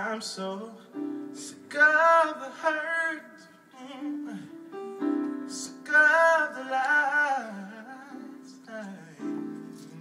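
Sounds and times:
electric keyboard chords: 0:04.0 - 0:10.0.

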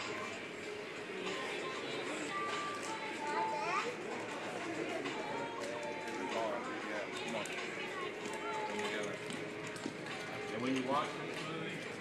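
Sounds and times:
indistinct background voices: 0:00.1 - 0:12.0
high child's voice: 0:03.2 - 0:04.0.

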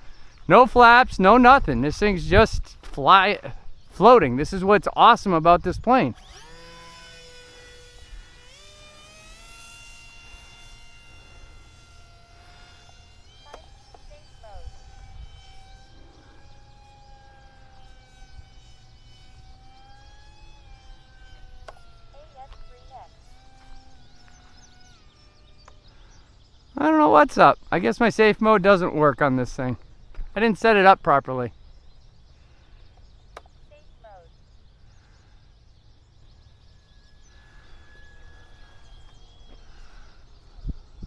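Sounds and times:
model plane motor whine: 0:03.5 - 0:29.2, 0:29.8 - 0:41.0.

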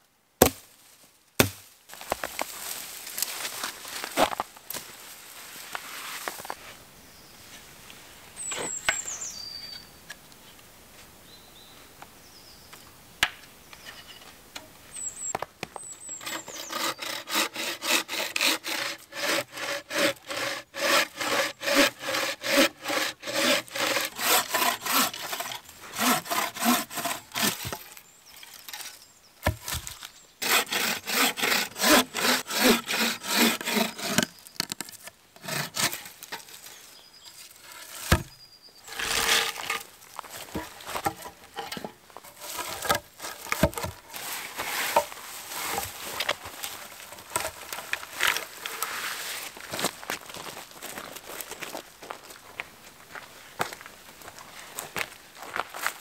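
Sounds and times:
bow saw cutting wood: 0:16.0 - 0:28.0, 0:30.4 - 0:36.4, 0:37.6 - 0:39.9, 0:40.5 - 0:45.9.

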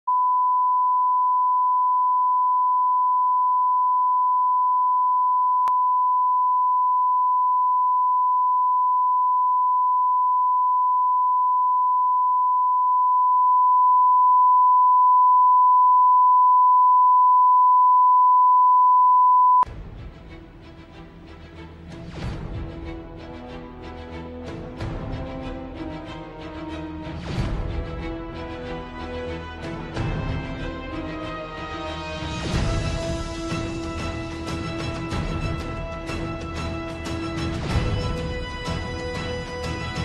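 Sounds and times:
steady pure test tone beep: 0:00.1 - 0:19.7.

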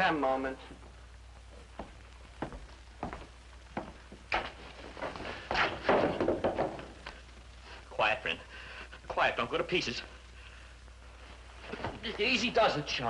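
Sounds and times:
low steady hum: 0:00.0 - 0:13.0
footsteps on hard floor: 0:01.6 - 0:07.2
shuffling and scuffling: 0:01.7 - 0:07.2, 0:11.1 - 0:12.4.

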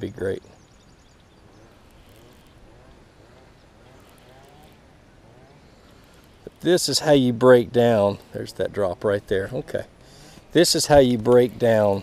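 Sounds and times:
fishing reel being cranked: 0:01.5 - 0:08.5.

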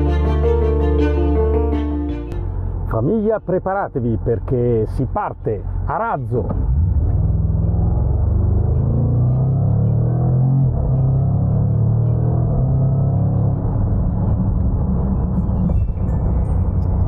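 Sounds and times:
car engine accelerating hard: 0:06.4 - 0:17.0.

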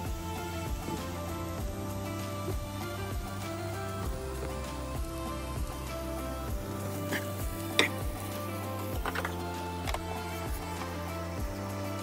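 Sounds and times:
background music with a steady beat: 0:00.0 - 0:12.0.

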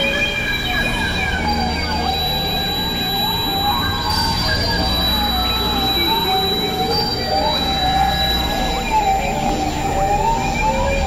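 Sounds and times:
wavering electronic drones: 0:00.0 - 0:11.0.

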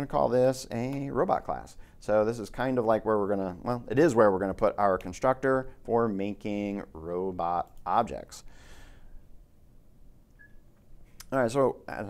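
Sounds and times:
faint microphone hum and hiss: 0:00.0 - 0:12.0
faint high blip: 0:10.3 - 0:10.6.

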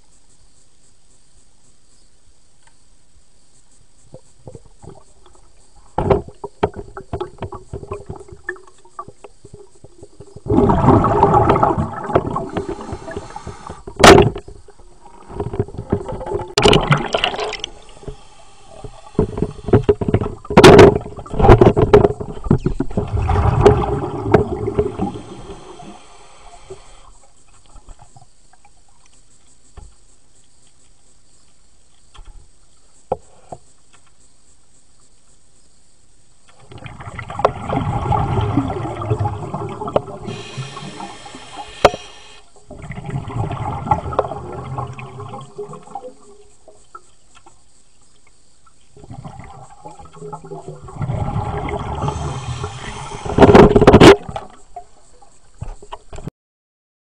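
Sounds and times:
air bubbling underwater: 0:07.0 - 0:14.4, 0:15.0 - 0:27.0, 0:36.7 - 0:46.2, 0:49.0 - 0:54.5.

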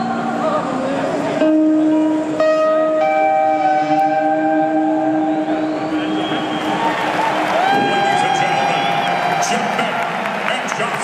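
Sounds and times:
live band sustained chord: 0:00.0 - 0:06.6.

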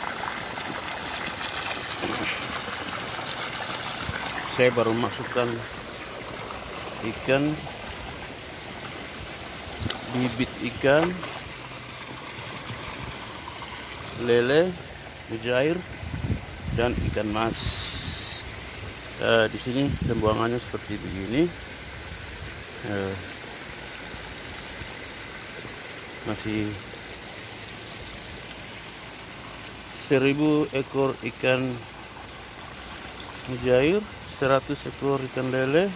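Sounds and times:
water trickling into pond: 0:00.0 - 0:35.9.

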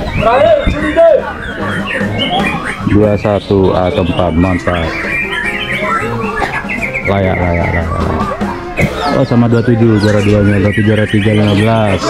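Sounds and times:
birds singing whistled trills: 0:00.0 - 0:12.0.

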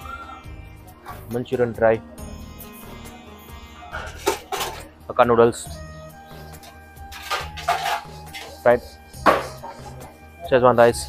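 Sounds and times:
background music: 0:00.0 - 0:11.0
metal lid clanking on tray: 0:04.0 - 0:04.8, 0:07.1 - 0:08.5.

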